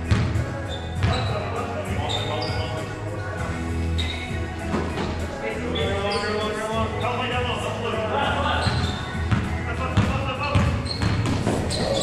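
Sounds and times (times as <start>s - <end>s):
background music: 0.0s - 12.0s
basketball bouncing on hardwood floor: 0.1s - 0.4s, 8.7s - 12.0s.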